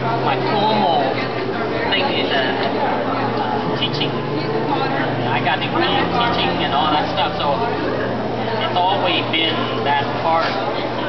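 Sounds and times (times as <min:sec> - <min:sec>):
indistinct talk: 0:00.0 - 0:11.0
steady low hum: 0:00.0 - 0:11.0.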